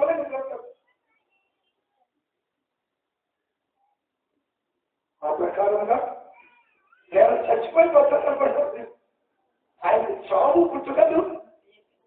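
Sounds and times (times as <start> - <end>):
man preaching: 0.0 - 0.7, 5.2 - 6.4, 7.1 - 9.1, 9.8 - 11.6.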